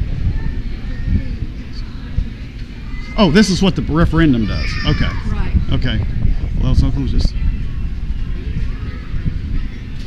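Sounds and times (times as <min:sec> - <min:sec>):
low rumble on microphone: 0:00.0 - 0:03.2, 0:04.6 - 0:10.0
faint distant voices: 0:00.0 - 0:10.0.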